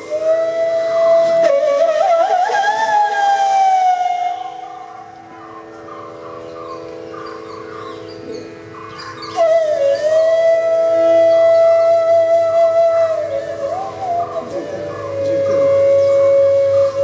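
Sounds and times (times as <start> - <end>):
bamboo flute playing: 0.0 - 17.0
soft steady drone: 0.0 - 17.0.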